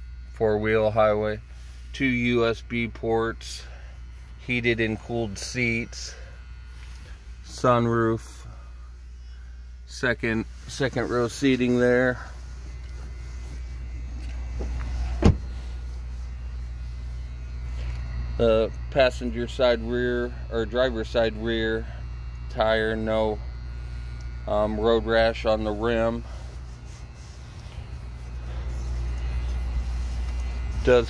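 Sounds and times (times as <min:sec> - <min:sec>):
steady low hum: 0:00.0 - 0:31.0
vehicle engine idling: 0:10.5 - 0:31.0
car door thud: 0:14.6 - 0:15.7.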